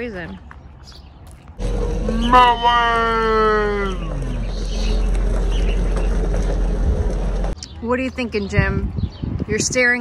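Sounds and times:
wind buffeting microphone: 3.6 - 10.0.

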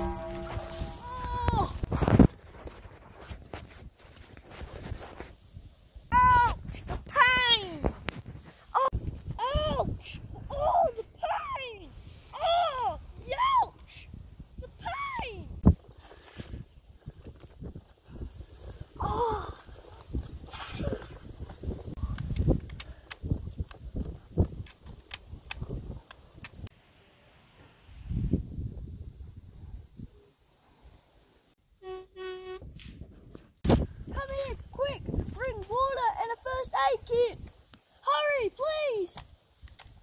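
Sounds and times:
footsteps on dry leaves and dirt: 0.0 - 5.4, 33.6 - 38.0.

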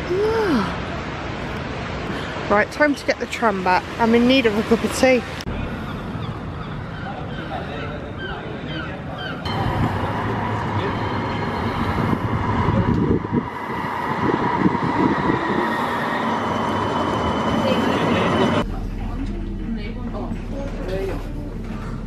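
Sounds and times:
tram motors whining: 9.3 - 18.6
wheels rumbling on rails: 9.5 - 18.7.

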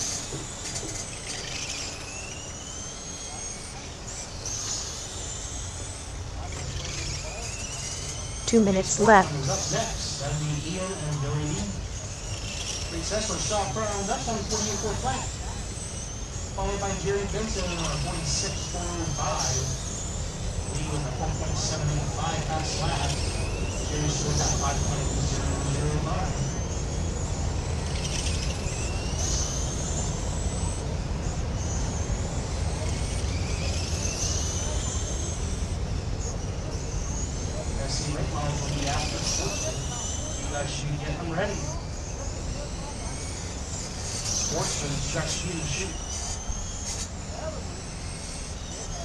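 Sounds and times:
race car motors whining: 0.0 - 49.0.

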